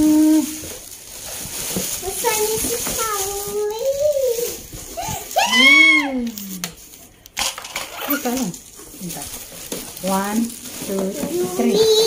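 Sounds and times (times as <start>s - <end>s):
child vocalising high-pitched: 3.8s - 6.2s.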